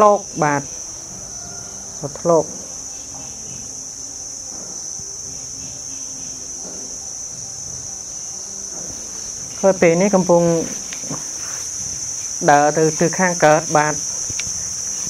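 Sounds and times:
insects droning: 0.0 - 15.0.

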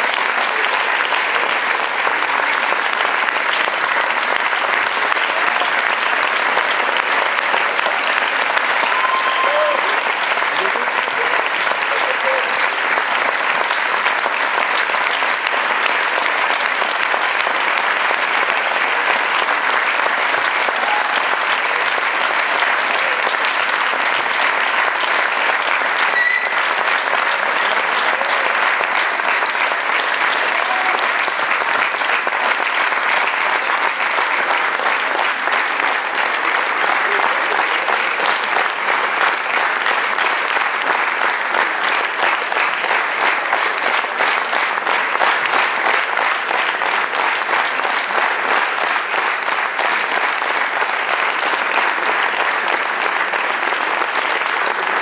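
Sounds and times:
audience applauding: 0.0 - 55.0.

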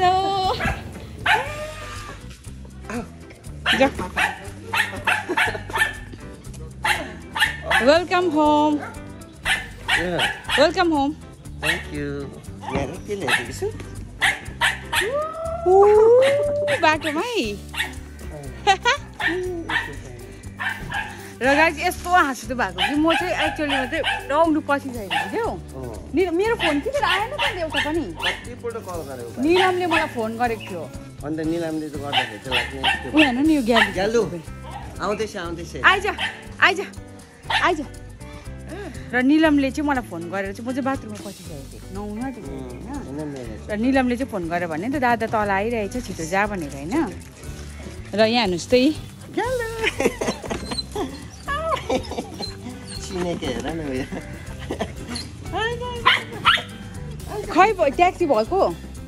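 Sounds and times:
background music: 0.0 - 59.0
dog barking: 0.5 - 1.7, 3.6 - 6.2, 6.8 - 10.9, 11.6 - 12.0, 12.6 - 15.1, 16.2 - 18.0, 19.2 - 21.3, 22.6 - 25.6, 26.4 - 28.6, 29.4 - 30.4, 32.1 - 35.0, 35.9 - 36.8, 37.4 - 37.9, 56.0 - 56.9
dog whining and yelping: 0.5 - 2.1, 14.2 - 18.0, 50.1 - 53.7, 54.6 - 56.9.

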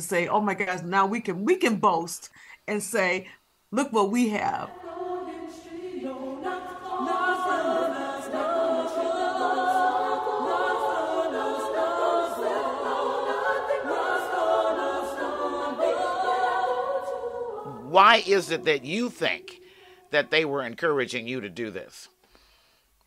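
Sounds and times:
choir singing sustained chords: 4.3 - 20.8.

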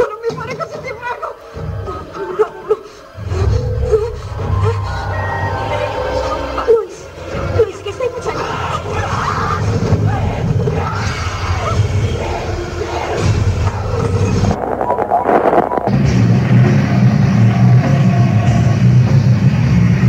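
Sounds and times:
harsh distorted noise music: 3.2 - 20.0.

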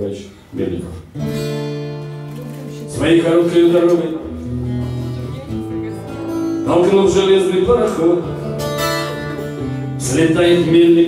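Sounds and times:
acoustic guitar chords: 0.6 - 11.0.

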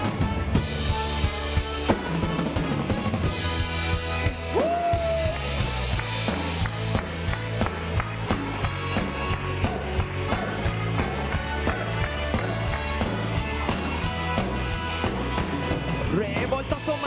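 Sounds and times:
bass and guitar: 0.0 - 17.0
drum kit steady beat: 0.0 - 17.0.

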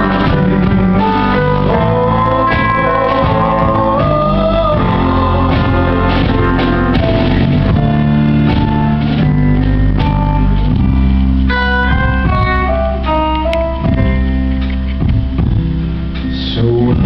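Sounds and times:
guitar melody: 0.0 - 17.0
live band instrumental: 0.0 - 17.0.

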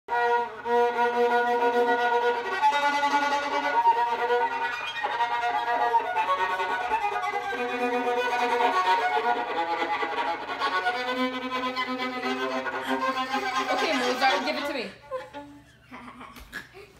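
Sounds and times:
violin playing simple tune: 0.1 - 15.7.

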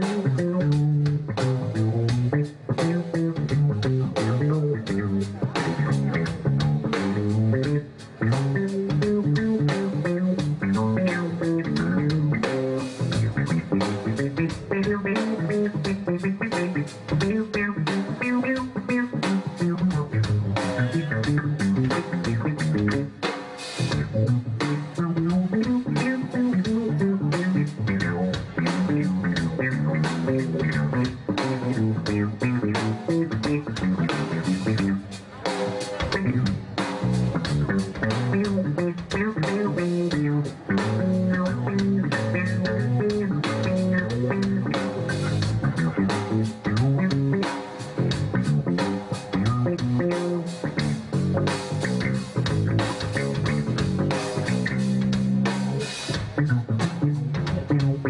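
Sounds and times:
blues band steady beat: 0.0 - 58.0
electric bass guitar solo: 0.0 - 58.0.

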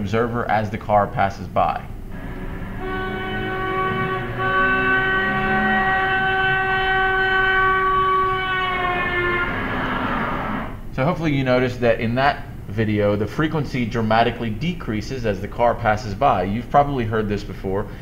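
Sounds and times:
car horn passing by: 2.1 - 10.8.

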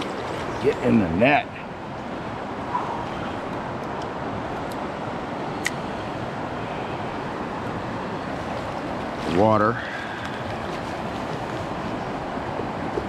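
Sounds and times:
stream water flowing: 0.0 - 13.0.

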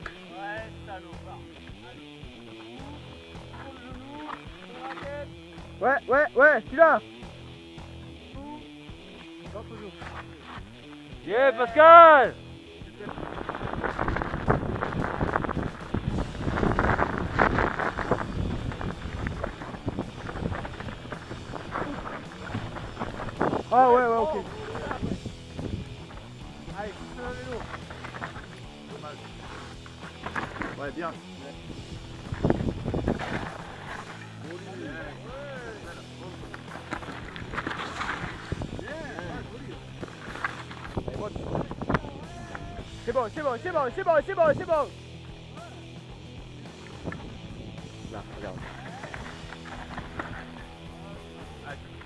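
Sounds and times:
bike tyres clattering over stones: 12.9 - 42.2, 46.8 - 52.0
wind on microphone: 13.0 - 26.0, 31.7 - 33.6, 40.8 - 42.8.

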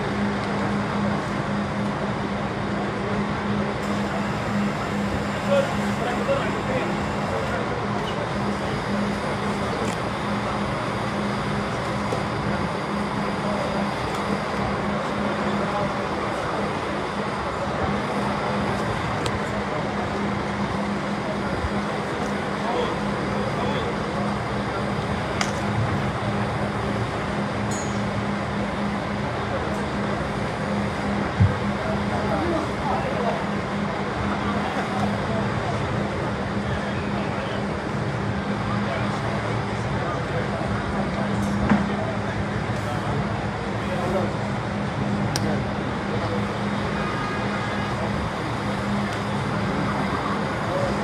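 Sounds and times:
idling coach engine hum: 0.0 - 51.0
many people talking: 0.0 - 51.0.

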